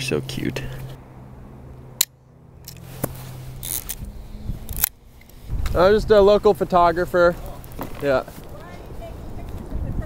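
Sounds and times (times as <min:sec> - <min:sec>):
camera mechanical rasp: 0:02.7 - 0:05.4.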